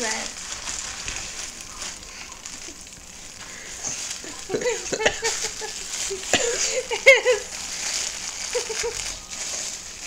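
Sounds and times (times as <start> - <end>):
paper and plastic packaging rustling: 0.0 - 10.0.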